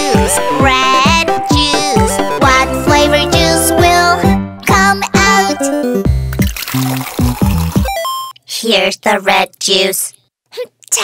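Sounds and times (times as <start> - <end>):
children's song music: 0.0 - 10.1
juice pouring into cup: 6.4 - 7.9.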